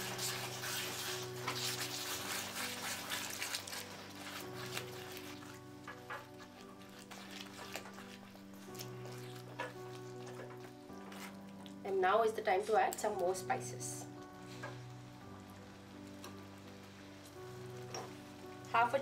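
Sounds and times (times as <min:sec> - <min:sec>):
spatula stirring in a pan: 0:00.0 - 0:11.8, 0:16.1 - 0:18.8
mixture sizzling: 0:00.0 - 0:11.9, 0:13.2 - 0:19.0
soft background music: 0:00.0 - 0:19.0.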